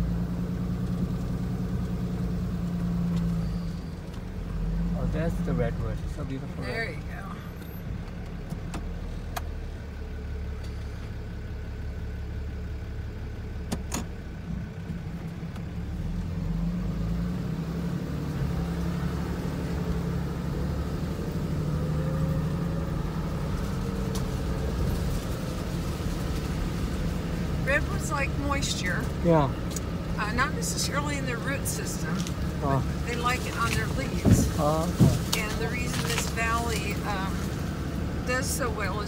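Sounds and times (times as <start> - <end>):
vehicle engine and tyre noise: 0.0 - 39.0.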